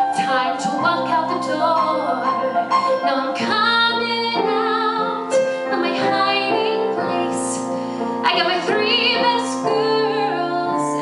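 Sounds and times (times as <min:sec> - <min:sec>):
woman singing into microphone: 0:00.0 - 0:11.0.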